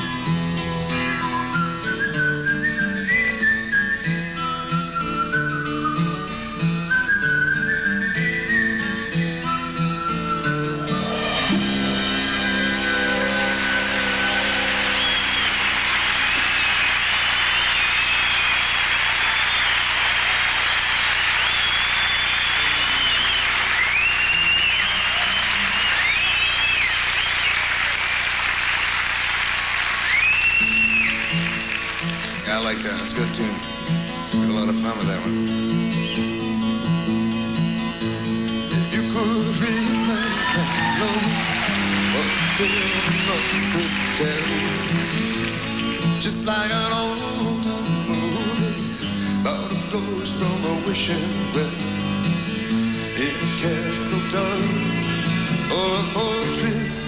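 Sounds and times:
acoustic guitar: 0:00.0 - 0:57.0
audience whistling: 0:00.0 - 0:57.0
band playing folk song: 0:00.0 - 0:57.0
audience applauding: 0:11.0 - 0:33.6, 0:39.4 - 0:48.8.

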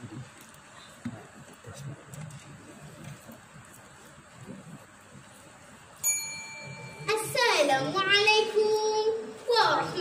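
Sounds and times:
small bell ding: 0:06.0 - 0:07.1.

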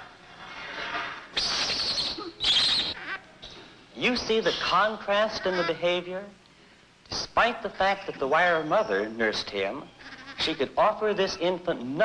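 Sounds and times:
infant monkey crying shrilly: 0:01.4 - 0:03.3, 0:05.2 - 0:06.0, 0:09.8 - 0:10.5.

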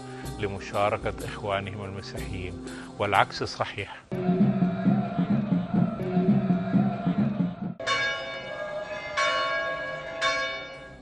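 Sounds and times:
bell ringing: 0:07.8 - 0:11.0.

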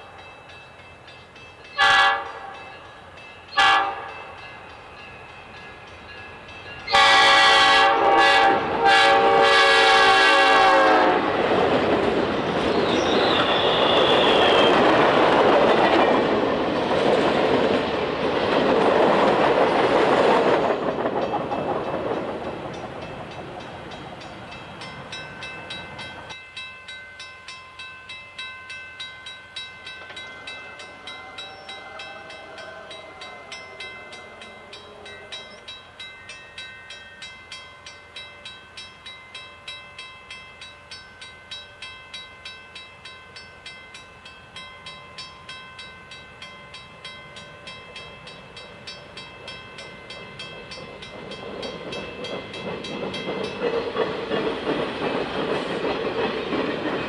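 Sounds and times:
train cars rumbling past: 0:00.0 - 0:57.0
faint train horn: 0:01.8 - 0:02.8, 0:03.5 - 0:04.3, 0:06.9 - 0:11.4, 0:13.0 - 0:14.8, 0:30.9 - 0:35.7
level crossing bell ringing: 0:24.8 - 0:48.2.

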